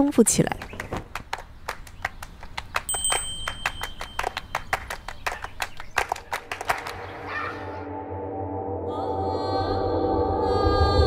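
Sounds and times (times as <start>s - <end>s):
thin high steady tone: 2.9s - 4.6s.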